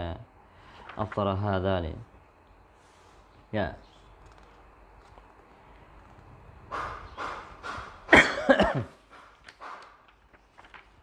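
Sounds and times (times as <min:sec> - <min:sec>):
person coughing: 0:08.1 - 0:09.0.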